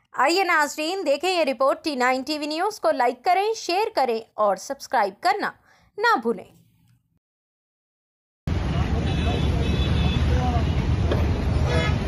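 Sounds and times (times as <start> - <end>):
street traffic rumble: 8.5 - 12.0
high horn toots: 9.0 - 10.8, 11.5 - 12.0.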